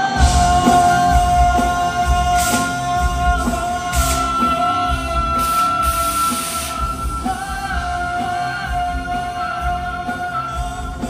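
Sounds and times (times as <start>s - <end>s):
live pop band: 0.0s - 11.0s
man singing long notes: 0.0s - 11.0s.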